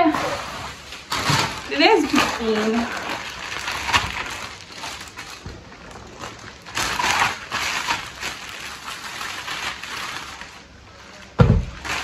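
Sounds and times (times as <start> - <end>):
rustling and crinkling handling noise: 0.0 - 12.0.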